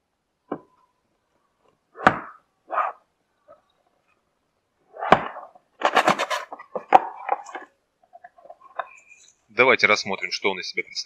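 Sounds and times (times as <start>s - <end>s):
box handling noise: 5.0s - 8.9s.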